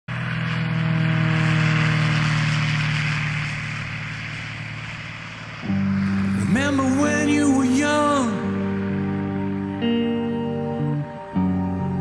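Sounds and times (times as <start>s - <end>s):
propeller aircraft engine: 0.0s - 12.0s
held music chord: 5.6s - 12.0s.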